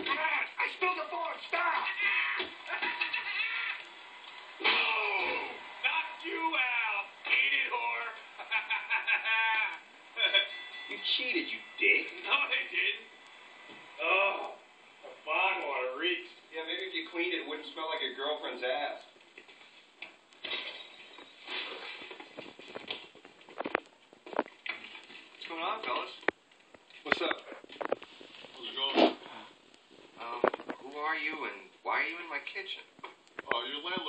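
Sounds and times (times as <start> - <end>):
man laughing through tv speaker: 2.0 - 3.9, 8.4 - 10.5
rustling and handling noises: 18.9 - 31.0.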